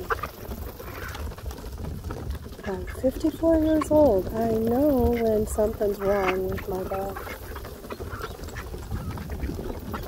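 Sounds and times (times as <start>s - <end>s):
ducks feeding: 0.0s - 10.0s.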